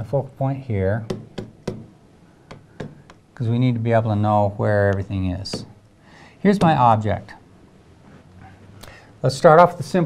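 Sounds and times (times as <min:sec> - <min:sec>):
pen tapping on glass: 0:01.1 - 0:01.9.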